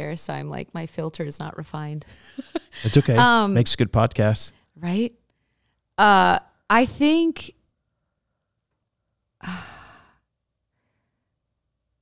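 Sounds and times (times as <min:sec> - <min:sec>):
person sighing: 0:02.8 - 0:03.2, 0:09.4 - 0:10.1.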